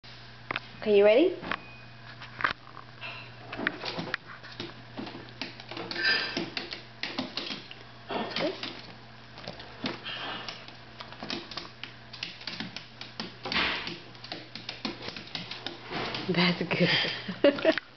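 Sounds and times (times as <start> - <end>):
dog claws clicking on wood floor: 3.8 - 16.3.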